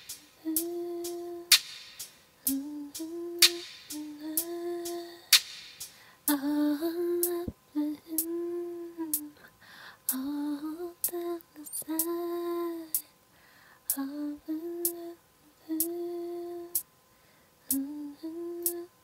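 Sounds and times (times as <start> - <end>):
woman humming a melody: 0.3 - 1.5, 2.5 - 5.3, 6.3 - 9.4, 14.0 - 16.8, 17.7 - 19.0
sharp click keeping time: 2.4 - 5.4.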